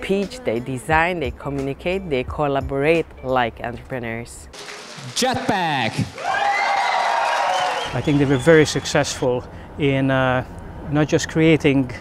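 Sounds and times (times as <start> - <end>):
crowd cheering and clapping: 4.6 - 9.2
high voices shouting: 5.2 - 9.0.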